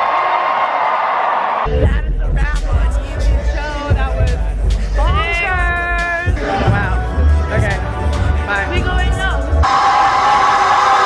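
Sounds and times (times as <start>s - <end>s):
hip-hop music with bass: 1.6s - 11.0s.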